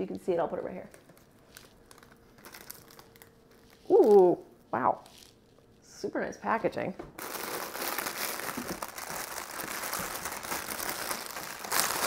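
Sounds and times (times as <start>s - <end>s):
packaging rustling and crinkling: 0.9s - 4.3s, 7.2s - 12.0s.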